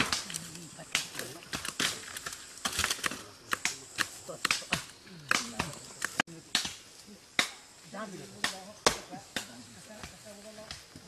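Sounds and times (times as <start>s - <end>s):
voices talking: 0.0s - 11.0s
chopping strikes on wood: 0.9s - 7.6s, 8.4s - 11.0s.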